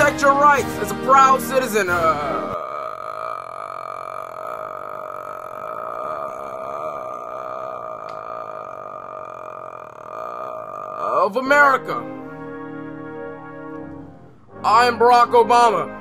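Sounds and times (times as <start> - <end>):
man saying uhhh: 1.8 - 12.1.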